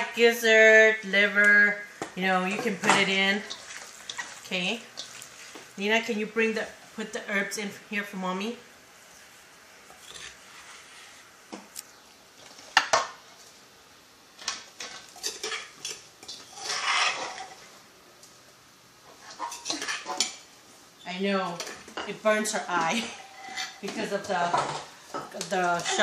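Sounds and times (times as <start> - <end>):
metal spoon scraping a bowl: 10.0 - 11.2, 15.2 - 17.6.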